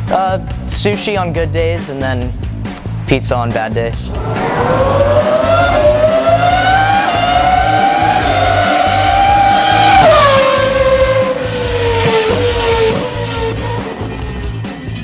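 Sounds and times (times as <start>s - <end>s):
race car engine passing: 2.7s - 13.7s.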